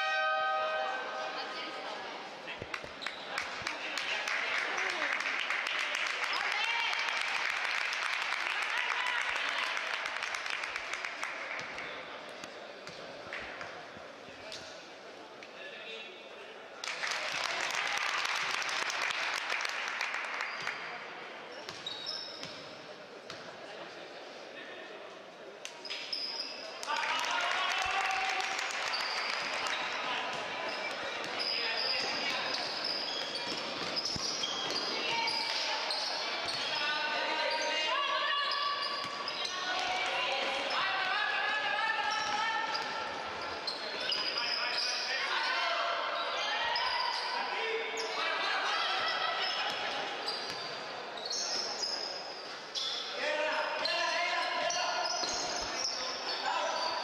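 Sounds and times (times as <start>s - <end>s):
sneaker squeaks: 2.6s - 3.4s, 21.5s - 23.4s, 25.7s - 26.8s, 28.8s - 41.0s, 42.0s - 57.0s
ball bouncing on court: 30.3s - 35.6s.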